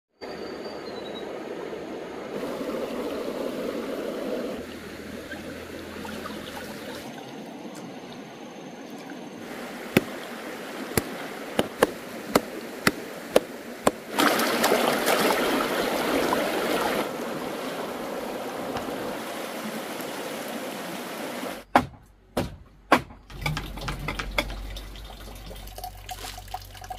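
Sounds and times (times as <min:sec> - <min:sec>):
stream trickling over stones: 0:02.3 - 0:21.6, 0:23.3 - 0:26.9
sharp chop: 0:11.0 - 0:14.0
sharp knocks: 0:11.0 - 0:14.0.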